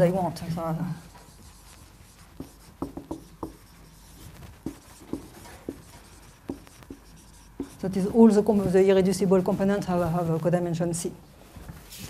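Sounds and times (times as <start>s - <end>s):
marker writing on whiteboard: 1.1s - 10.2s.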